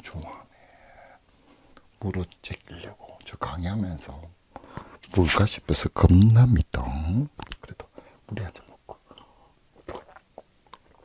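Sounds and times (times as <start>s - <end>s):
mouth sounds: 5.1s - 11.0s.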